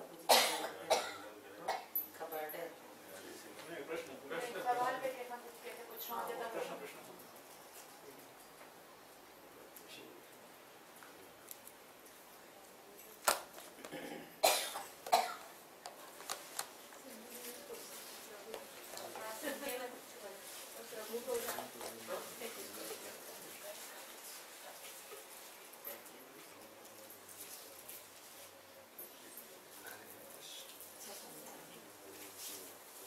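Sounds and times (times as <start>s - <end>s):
person coughing: 0.3s - 1.9s, 13.8s - 15.4s.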